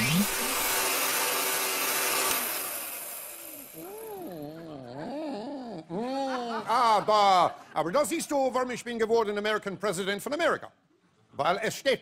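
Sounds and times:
man making wordless sounds: 3.8 - 7.6.

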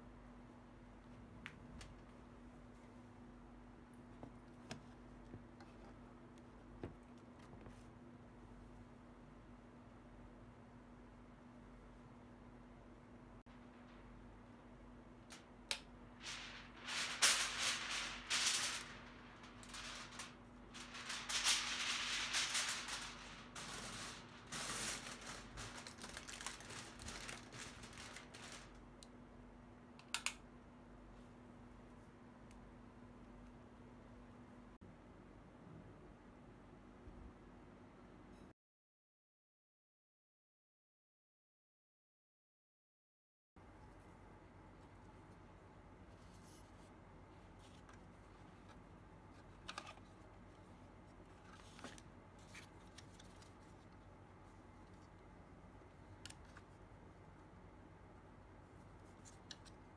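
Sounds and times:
faint steady hum: 0.0 - 38.5, 43.6 - 59.9
foil and plastic lid crinkling: 16.2 - 28.8.

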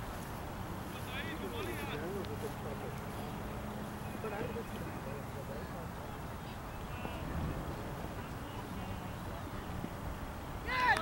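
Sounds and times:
distant people calling: 0.0 - 11.0
low microphone rumble: 6.1 - 10.7.

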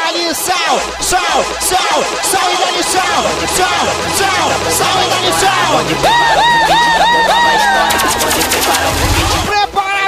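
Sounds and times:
stuttering synth notes: 0.2 - 9.5
sharp electronic hits: 0.4 - 9.5
low bass swell: 0.8 - 9.5.

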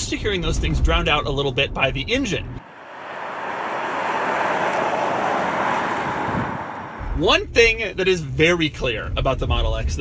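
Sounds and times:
car tyre and road noise: 2.6 - 8.1.

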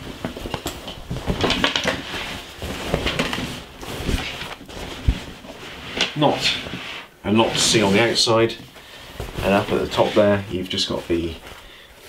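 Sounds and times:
denim fabric rustling: 0.0 - 11.6.

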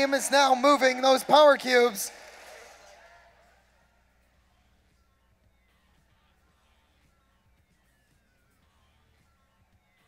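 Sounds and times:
announcer voice echoing: 0.0 - 2.1
faint arena noise: 0.0 - 10.0.

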